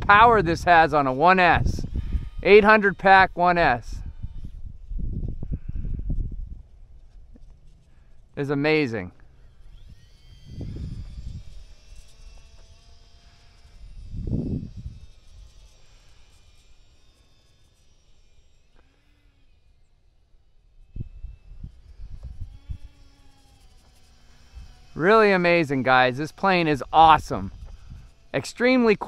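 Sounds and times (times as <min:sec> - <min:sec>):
wind buffeting microphone: 0:00.0 - 0:07.4, 0:09.6 - 0:12.8, 0:13.7 - 0:15.7, 0:20.9 - 0:23.2, 0:24.4 - 0:28.3
electric model plane motors whining: 0:00.0 - 0:29.0.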